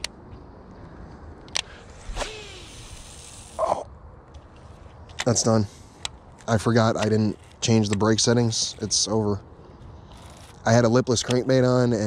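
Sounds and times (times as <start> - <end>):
spool spinning and line hissing: 1.7 - 3.8.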